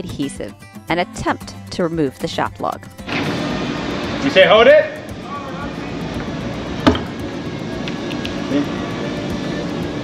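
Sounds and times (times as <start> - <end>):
sharp knock: 6.8 - 7.2.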